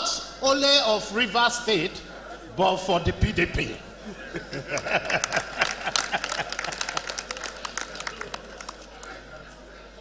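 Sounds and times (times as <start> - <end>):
audience applauding: 4.7 - 9.2.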